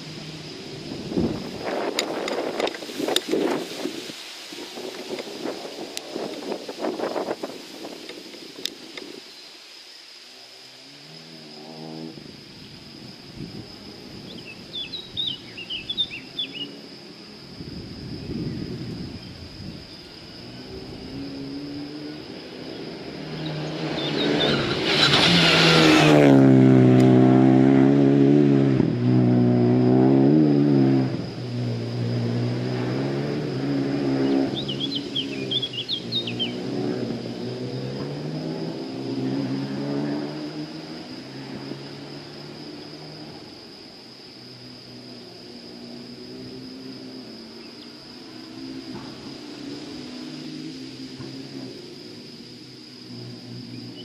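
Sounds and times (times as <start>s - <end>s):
rally car engine passing at speed: 10.6s - 54.0s
bird chirping: 14.3s - 16.8s, 22.7s - 24.8s, 34.2s - 36.7s.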